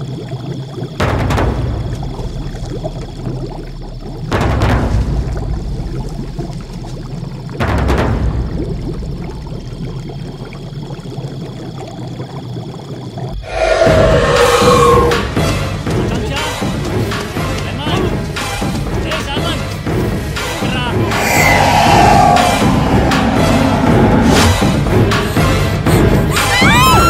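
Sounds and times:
low rumbling: 13.4s - 15.4s, 20.9s - 25.7s
sudden hits: 21.0s - 25.3s
thin high hum: 21.0s - 25.3s.

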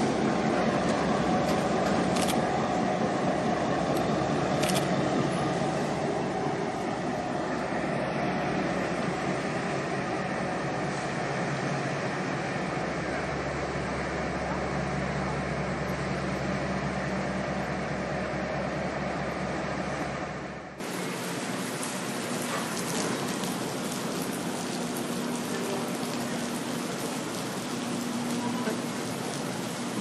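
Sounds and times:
diesel locomotive engines: 0.0s - 30.0s.

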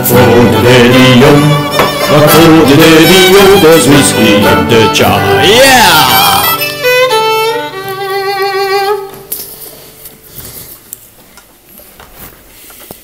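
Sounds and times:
fiddle with vibrato: 0.1s - 9.4s.

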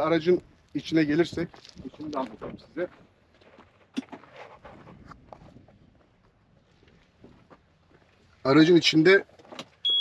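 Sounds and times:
footsteps on dirt: 0.3s - 8.5s.

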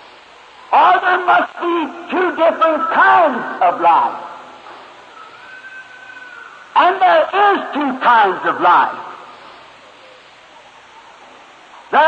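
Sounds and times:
tape hiss: 0.0s - 12.0s
man preaching: 0.7s - 4.4s, 6.8s - 9.2s.

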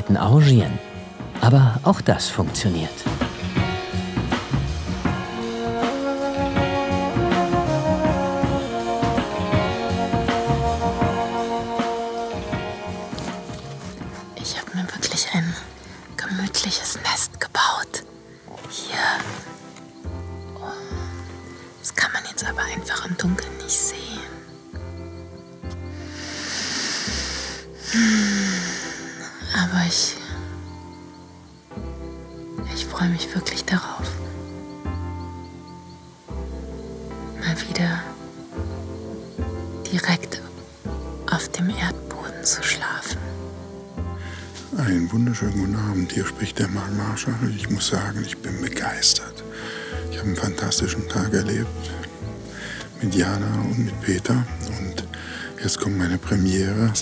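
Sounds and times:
soft background music: 0.0s - 57.0s
woman whispering: 16.2s - 19.4s, 21.9s - 24.2s, 28.0s - 30.3s.

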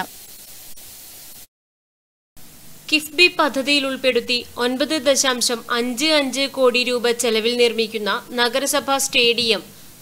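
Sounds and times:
studio room tone hiss: 0.0s - 1.5s, 2.4s - 10.0s.

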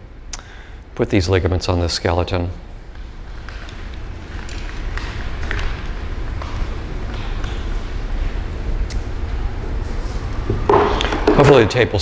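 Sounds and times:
steady low rumble: 0.0s - 11.2s.

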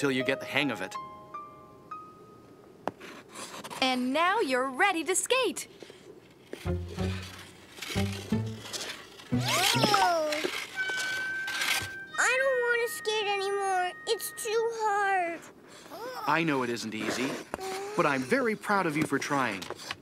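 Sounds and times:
light cartoon music: 0.0s - 2.6s, 6.6s - 14.5s
young child crying: 9.4s - 10.5s, 15.9s - 16.4s, 17.6s - 18.2s.

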